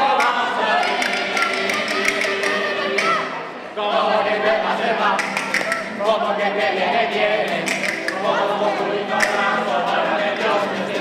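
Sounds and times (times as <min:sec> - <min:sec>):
voices singing together: 0:00.0 - 0:11.0.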